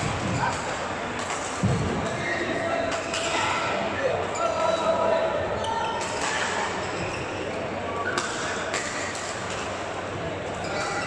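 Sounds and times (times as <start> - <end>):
racket hitting shuttlecock: 0.0 - 2.2
voices in sports hall: 0.0 - 11.0.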